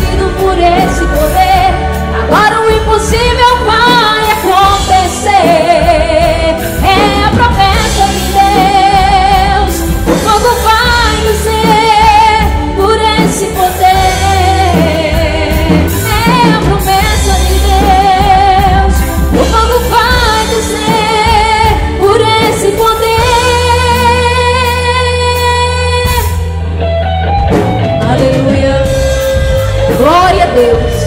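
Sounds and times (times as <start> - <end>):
woman singing with vibrato: 0.0 - 26.8, 27.8 - 31.0.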